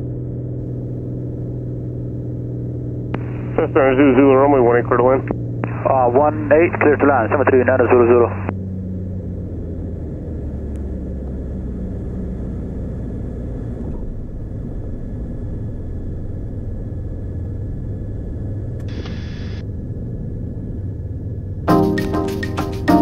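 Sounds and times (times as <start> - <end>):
propeller plane engine droning: 0.0 - 23.0.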